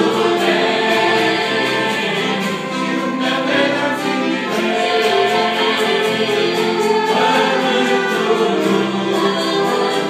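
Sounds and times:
mixed choir singing a hymn: 0.0s - 10.0s.

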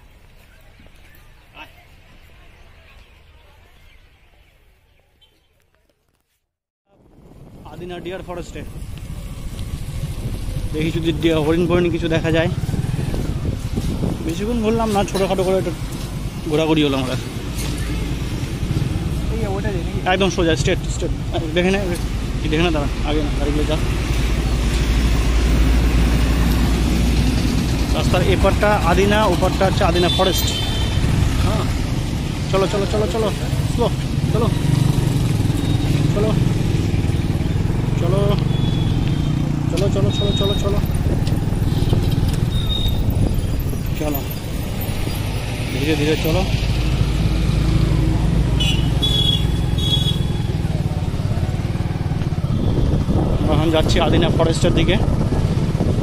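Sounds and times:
motorcycle engine and road rumble: 5.2s - 56.0s
trucks and motorbikes passing: 7.1s - 56.0s.

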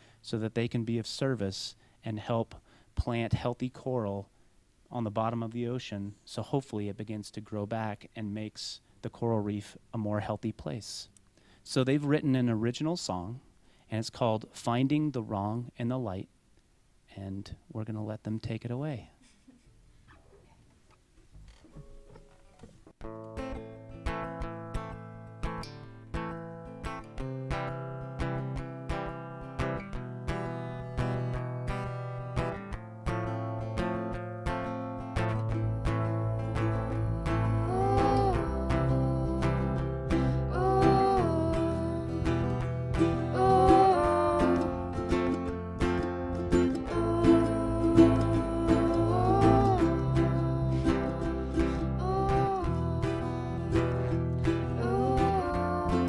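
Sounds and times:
acoustic guitar strumming: 21.4s - 56.0s
low bass: 35.1s - 56.0s.

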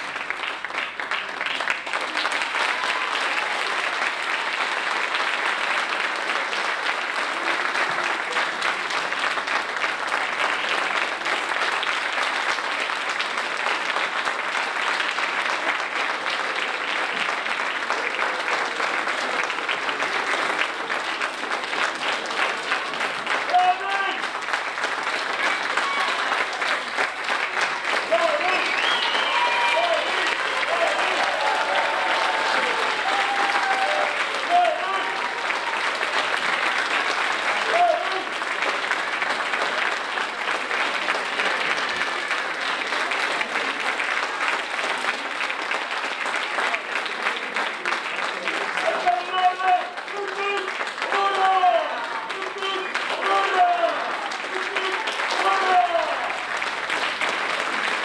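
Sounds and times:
audience applauding: 0.0s - 58.0s.

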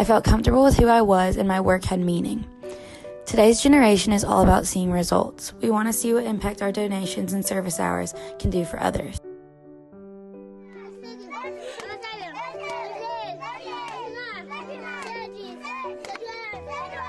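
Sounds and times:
background music with held notes: 0.0s - 17.0s
children chattering and calling out: 10.7s - 17.0s.

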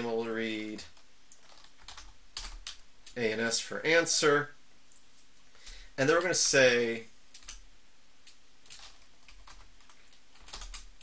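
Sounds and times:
computer keyboard typing: 0.8s - 3.2s, 7.3s - 7.6s, 8.2s - 11.0s.

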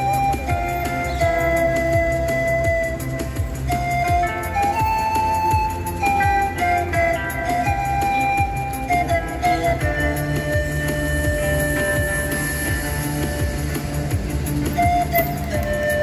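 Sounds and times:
panpipes playing slow melody: 4.5s - 13.7s.

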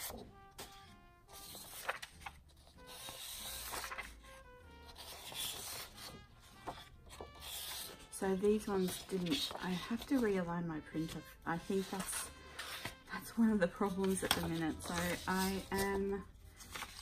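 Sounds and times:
paper rustling and sliding: 0.0s - 4.2s, 4.9s - 10.3s, 11.6s - 13.0s, 13.9s - 17.0s
faint background music: 0.0s - 17.0s.

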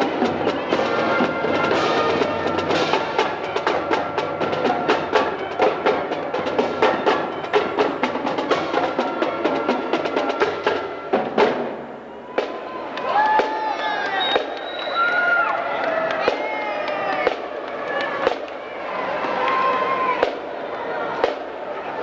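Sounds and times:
spectators' voices: 0.0s - 22.0s.

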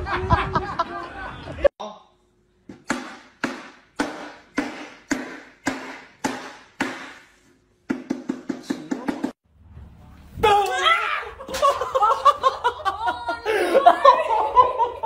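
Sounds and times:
cleaver chopping on wooden board: 2.7s - 7.3s.

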